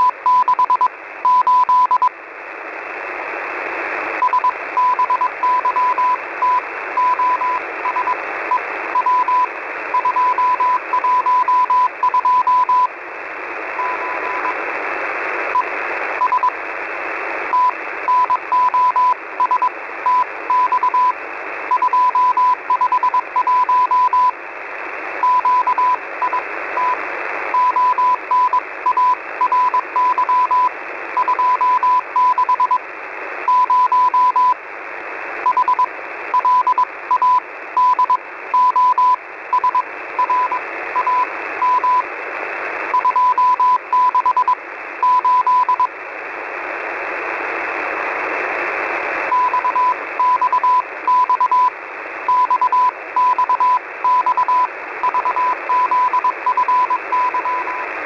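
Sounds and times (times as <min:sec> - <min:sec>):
morse code beeps: 0:00.0 - 0:02.1, 0:04.2 - 0:08.2, 0:09.0 - 0:12.9, 0:16.2 - 0:16.5, 0:17.5 - 0:24.4, 0:25.2 - 0:27.0, 0:27.6 - 0:32.8, 0:33.5 - 0:34.6, 0:35.5 - 0:42.0, 0:42.9 - 0:45.9, 0:49.3 - 0:51.7, 0:52.3 - 0:57.8
receiver static: 0:00.0 - 0:58.0.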